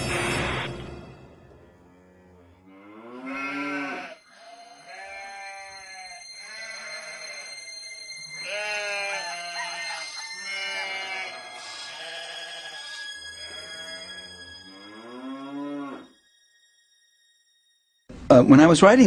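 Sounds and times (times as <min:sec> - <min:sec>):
farm animal bleating: 0:01.9 - 0:16.1.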